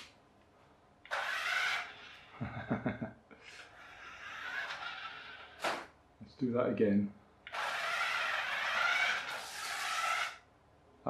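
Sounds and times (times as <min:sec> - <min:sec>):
toy car motor whining: 0:01.1 - 0:02.3, 0:03.6 - 0:05.9, 0:07.5 - 0:10.4.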